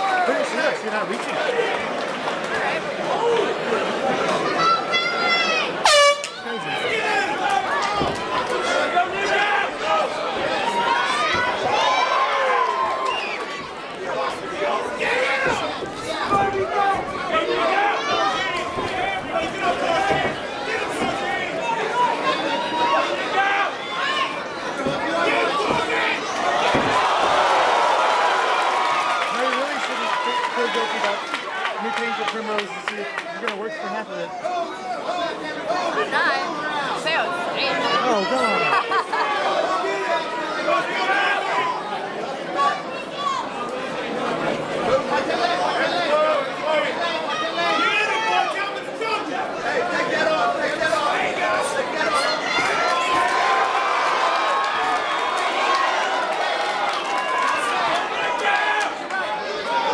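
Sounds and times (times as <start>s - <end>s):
crowd chatter: 0.0s - 59.9s
spectators cheering and shouting: 0.0s - 59.9s
air horn blast: 5.8s - 6.4s
people shouting: 14.2s - 28.5s.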